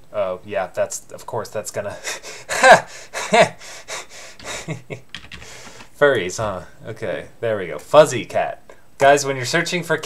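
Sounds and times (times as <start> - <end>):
man laughing: 1.9 - 5.1.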